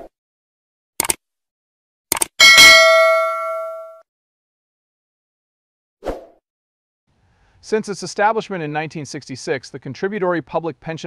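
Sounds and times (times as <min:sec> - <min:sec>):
bright bell ding: 0:02.4 - 0:04.0.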